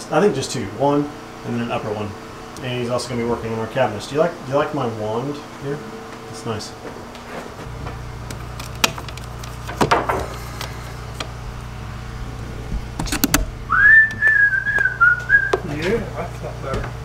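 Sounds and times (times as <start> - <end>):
low hum: 7.6 - 15.6
person whistling a wavering note: 13.7 - 15.6.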